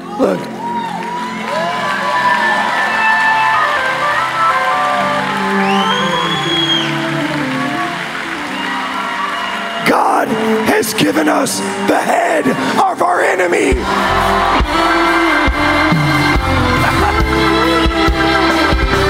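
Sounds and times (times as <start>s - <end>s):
congregation whooping and cheering: 0.0s - 19.0s.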